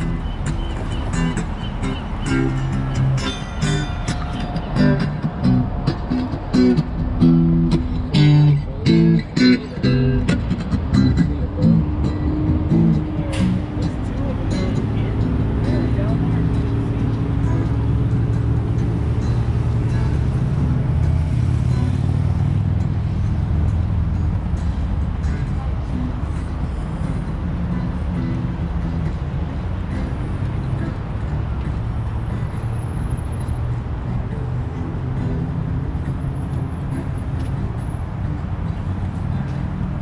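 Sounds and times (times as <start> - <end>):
cars passing on a road: 0.0 - 40.0
plucked guitar music: 0.0 - 40.0.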